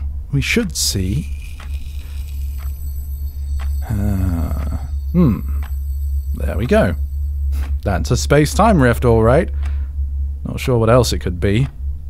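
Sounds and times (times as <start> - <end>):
low rumbling drone: 0.0 - 10.4.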